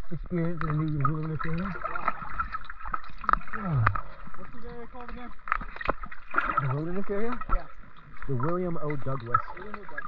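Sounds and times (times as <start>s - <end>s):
muffled voices underwater: 0.0s - 10.0s
water gurgling and clicking: 0.0s - 10.0s.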